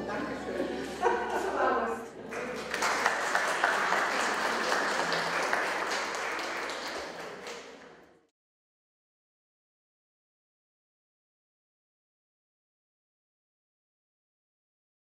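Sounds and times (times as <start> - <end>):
audience applauding: 2.3 - 8.1.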